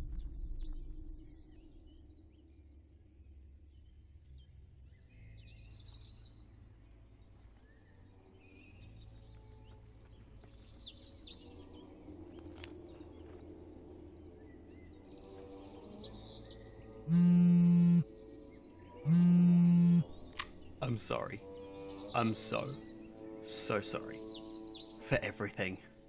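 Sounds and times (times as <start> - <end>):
birds chirping: 5.0 - 26.0
phone buzzing ring tone: 17.1 - 18.0, 19.1 - 20.0.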